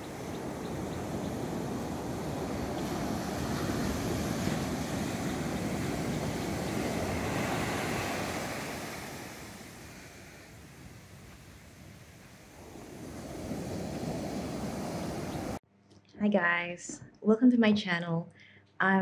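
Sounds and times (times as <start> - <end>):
sea waves breaking on beach: 0.0 - 15.6.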